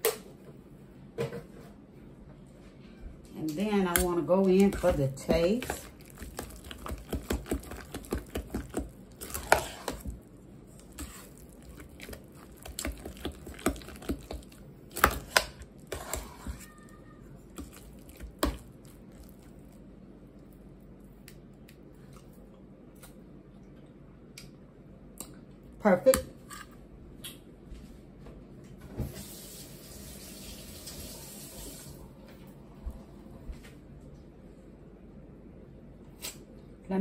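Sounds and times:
metal spoon scraping a pot: 9.2s - 10.0s.

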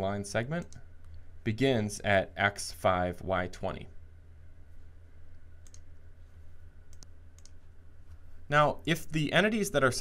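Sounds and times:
faint low hum: 0.0s - 10.0s
computer mouse clicks: 0.6s - 1.2s, 5.6s - 5.9s, 6.9s - 8.2s.

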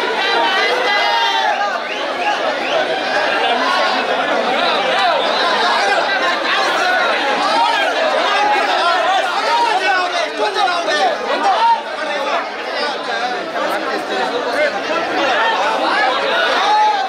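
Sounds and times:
crowd chatter: 0.0s - 17.0s.

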